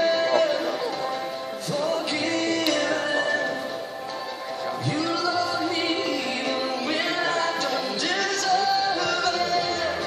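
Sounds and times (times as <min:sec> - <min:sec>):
worship music with singing: 0:00.0 - 0:10.0.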